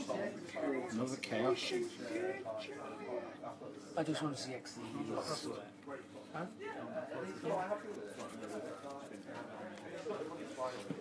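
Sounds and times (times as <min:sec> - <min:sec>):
murmured conversation: 0:00.0 - 0:11.0.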